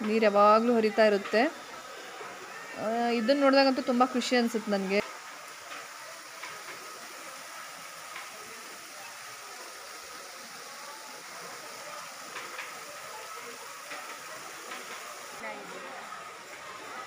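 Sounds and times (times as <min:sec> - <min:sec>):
water falling down rock wall: 0:00.1 - 0:17.0.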